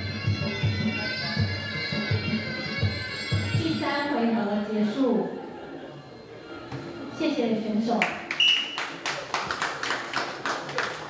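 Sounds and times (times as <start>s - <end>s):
audience clapping: 8.0s - 11.0s.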